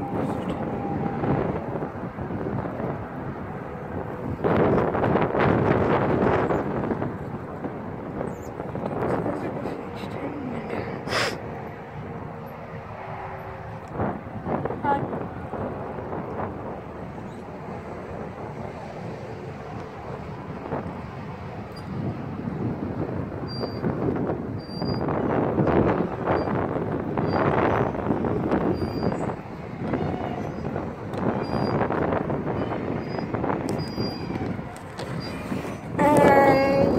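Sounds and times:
wind buffeting microphone: 0:00.0 - 0:36.9
children's voices: 0:36.0 - 0:36.9.

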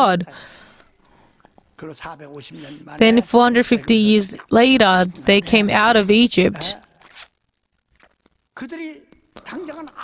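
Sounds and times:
man preaching: 0:02.1 - 0:06.8.

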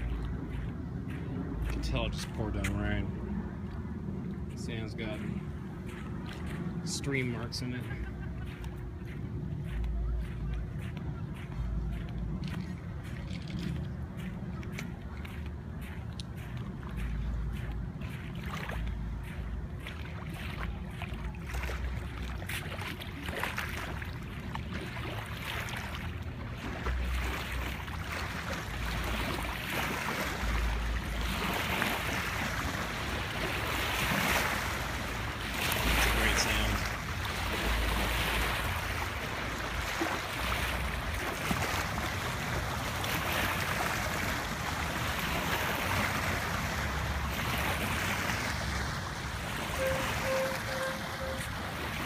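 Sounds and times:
footsteps on wet sand: 0:00.0 - 0:52.0
small waves lapping: 0:00.0 - 0:52.0.

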